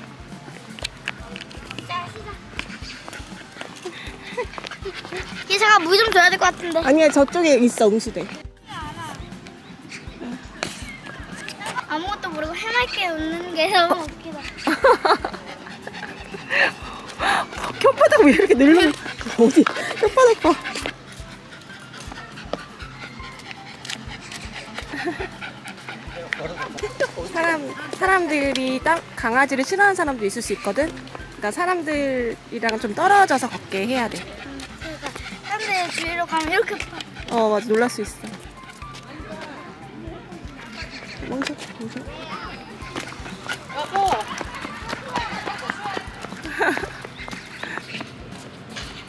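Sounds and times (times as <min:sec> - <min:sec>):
footsteps on brick paving: 0:00.0 - 0:49.0
dog panting: 0:01.7 - 0:49.0.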